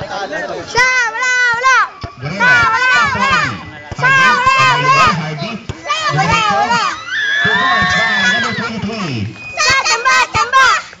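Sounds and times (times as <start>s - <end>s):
spectators shouting: 0.7s - 8.8s.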